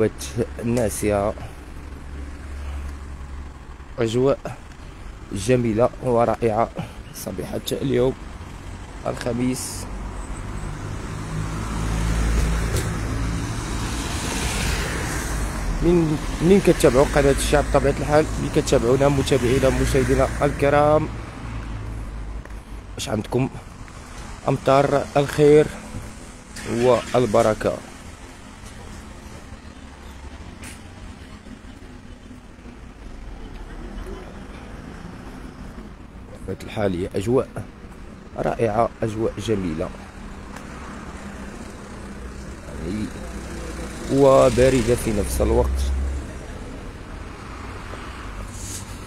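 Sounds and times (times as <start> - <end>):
traffic rumble: 0.0 - 49.0
tyre hiss and road noise: 0.0 - 49.0.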